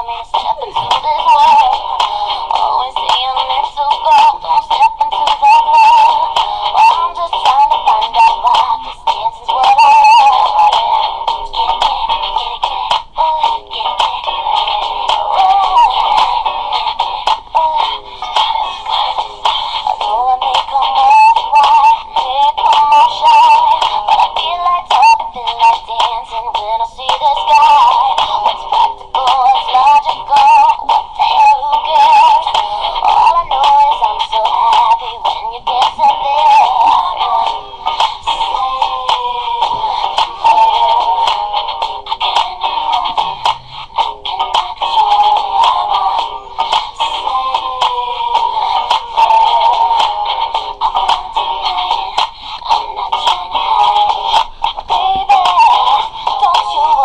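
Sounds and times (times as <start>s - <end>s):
high-pitched singing with vibrato: 0.0s - 57.0s
music: 0.0s - 57.0s
pop song: 0.0s - 57.0s.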